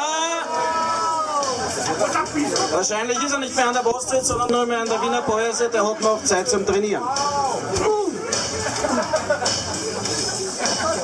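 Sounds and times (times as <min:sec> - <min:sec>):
voices talking in a hall: 0:00.0 - 0:08.8.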